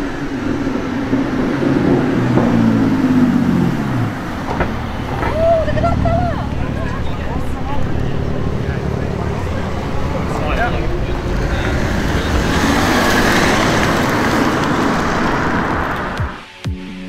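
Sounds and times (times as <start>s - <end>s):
car engine and exhaust: 0.0s - 16.5s.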